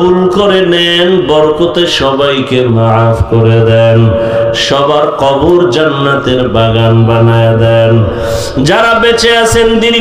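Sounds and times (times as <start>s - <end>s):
man chanting a prayer: 0.0s - 10.0s.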